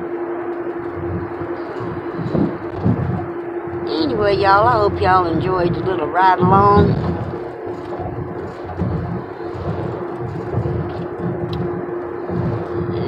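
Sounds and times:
car road noise rumble: 0.0 - 13.0
constant hum: 0.0 - 13.0.

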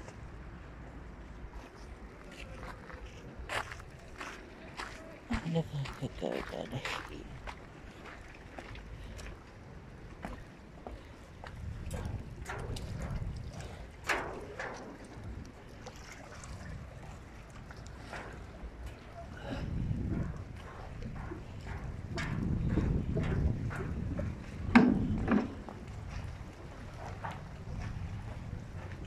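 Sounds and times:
wind rumbling on microphone: 7.1 - 29.0
footsteps on gangway: 17.8 - 29.0.

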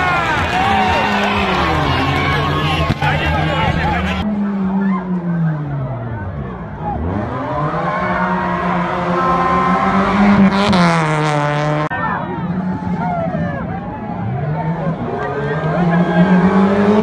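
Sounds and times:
rally car engine revving: 0.0 - 17.0.

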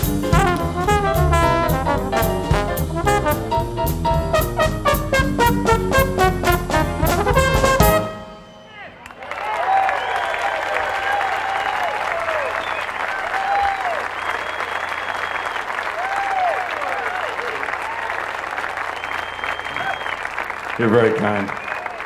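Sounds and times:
whistles: 8.2 - 9.2, 9.8 - 10.5, 12.3 - 13.1, 13.7 - 16.0, 18.7 - 20.5, 21.4 - 22.0
shouted whoops: 8.7 - 18.2, 19.2 - 20.2
audience applauding: 8.9 - 22.0.

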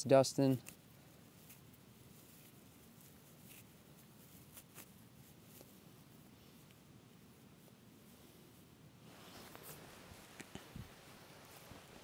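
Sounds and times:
bark fibres crackling: 0.0 - 6.2.

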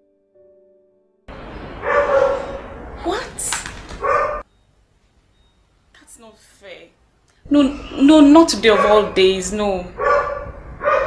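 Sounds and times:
woman making wordless sounds: 3.0 - 3.8, 6.0 - 10.0.

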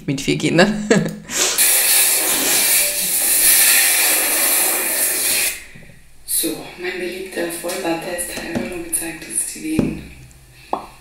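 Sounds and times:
shower head spraying into bathtub: 1.3 - 5.6.

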